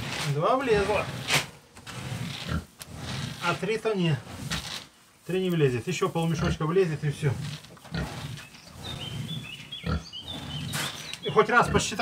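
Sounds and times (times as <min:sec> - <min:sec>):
pig grunting: 0:00.0 - 0:04.7, 0:06.3 - 0:12.0.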